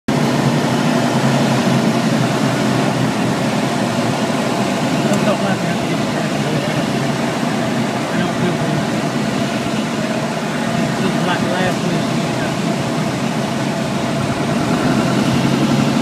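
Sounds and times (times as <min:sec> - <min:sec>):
aircraft engine and propeller drone: 0:00.1 - 0:16.0.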